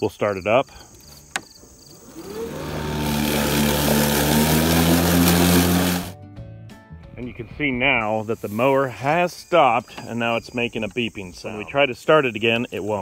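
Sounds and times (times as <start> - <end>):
electric lawn mower whine: 1.3 - 6.2.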